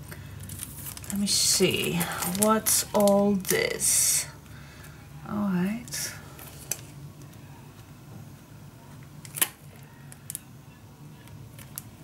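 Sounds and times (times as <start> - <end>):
steady low hum: 0.0 - 12.0
packages clicking and tapping: 0.1 - 3.2.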